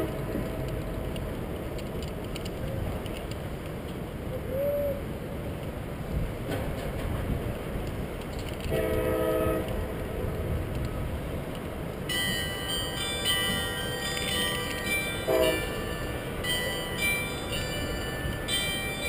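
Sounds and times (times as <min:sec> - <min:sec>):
wind rumbling on microphone: 0:00.0 - 0:12.6
high ringing tones: 0:12.1 - 0:19.0
horn-like chord: 0:15.1 - 0:16.5.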